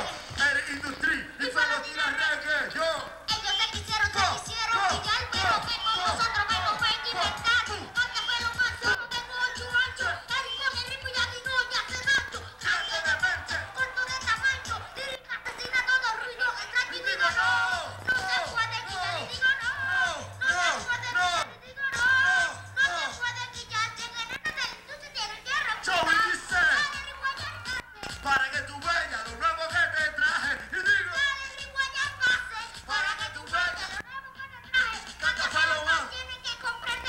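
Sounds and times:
reggaeton beat with bass: 0.0 - 24.2, 25.8 - 36.2
boy rapping into microphone: 0.0 - 37.0.

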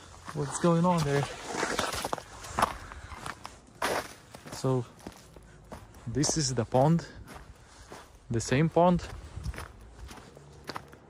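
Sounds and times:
footsteps on frozen ground: 0.0 - 11.0.

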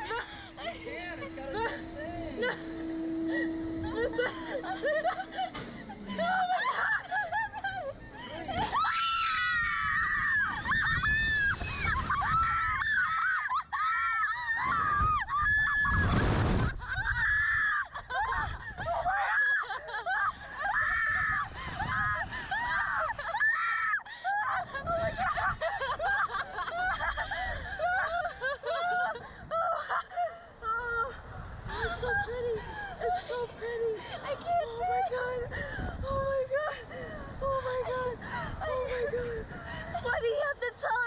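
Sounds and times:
women laughing: 0.0 - 9.2, 10.3 - 14.7, 16.6 - 21.0, 22.5 - 31.1, 31.7 - 40.6.

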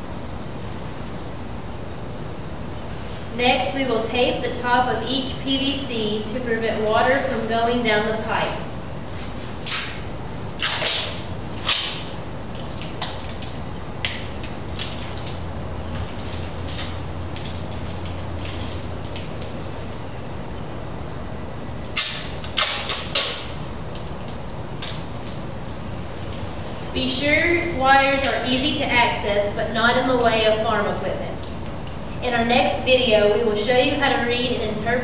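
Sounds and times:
steady low hum: 0.0 - 35.0
tape pulled off a roll: 10.6 - 15.4, 21.9 - 25.8.

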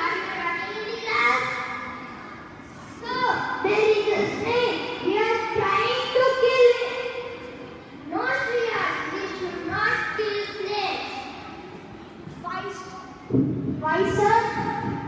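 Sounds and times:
children speaking through microphones: 0.0 - 15.0.

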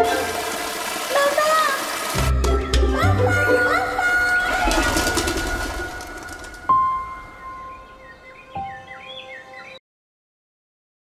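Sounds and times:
cartoon music: 2.2 - 7.8
small birds chirping: 4.4 - 9.8.

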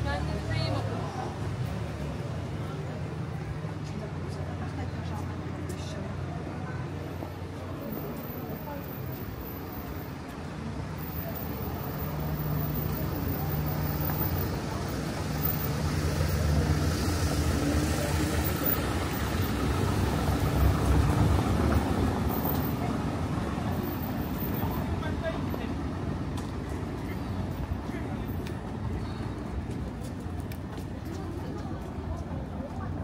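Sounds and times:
people's voices: 0.0 - 33.0.

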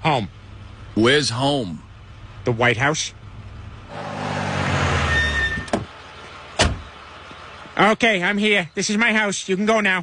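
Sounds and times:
car engine and tyre noise: 0.0 - 10.0
car door shutting: 4.0 - 5.9, 6.6 - 6.9
brief high squeak: 5.0 - 5.8.

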